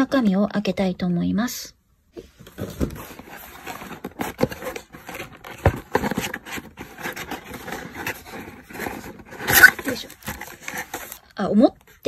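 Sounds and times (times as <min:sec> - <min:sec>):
cardboard box flaps scraping: 0:02.6 - 0:11.2.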